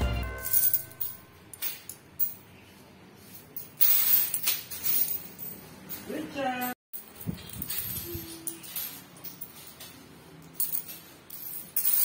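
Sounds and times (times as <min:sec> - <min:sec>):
metal coins clinking: 0:00.0 - 0:02.4, 0:03.2 - 0:12.0.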